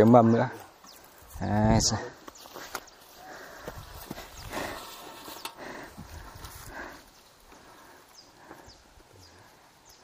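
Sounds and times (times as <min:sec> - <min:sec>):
leaves rustling: 0:00.6 - 0:09.7.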